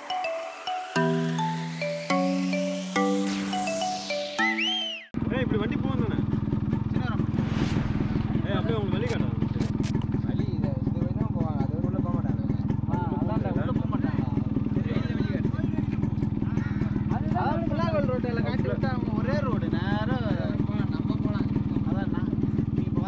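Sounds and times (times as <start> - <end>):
men talking: 5.2 - 6.3, 8.4 - 23.0
motorcycle engine running: 5.2 - 23.0.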